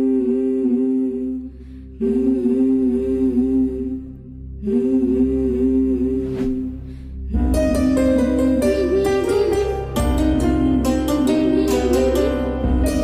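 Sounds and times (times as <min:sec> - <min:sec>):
low sustained bass: 0:00.0 - 0:13.0.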